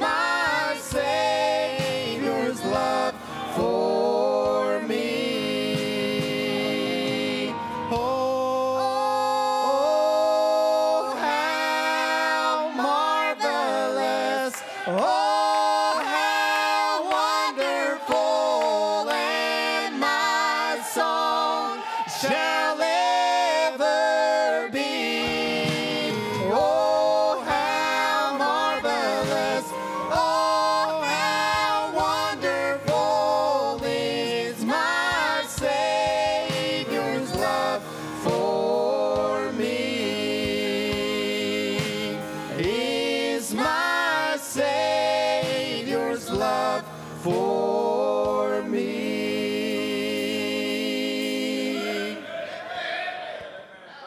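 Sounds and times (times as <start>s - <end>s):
vocal trio singing in harmony: 0.0s - 54.0s.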